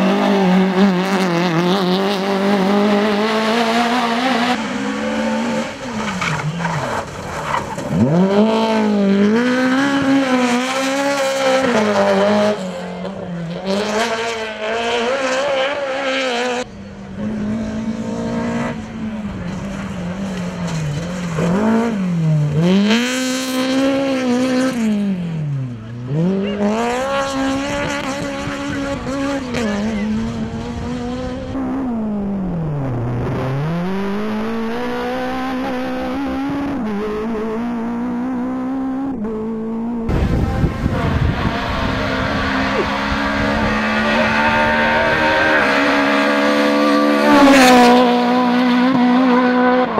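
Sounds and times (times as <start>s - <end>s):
passing car rush: 0.0s - 49.9s
rally car engine revving: 0.0s - 49.9s.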